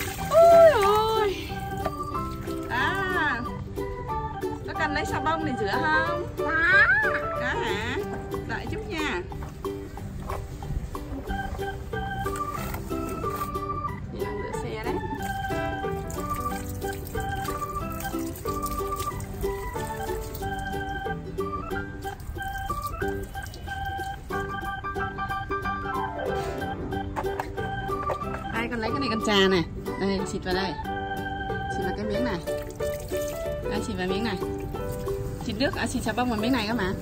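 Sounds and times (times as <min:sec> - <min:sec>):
hose water splashing into bucket: 0:00.0 - 0:03.1, 0:11.4 - 0:13.5, 0:15.1 - 0:21.2, 0:21.8 - 0:24.6, 0:32.2 - 0:37.0
electronic organ melody: 0:11.0 - 0:32.6.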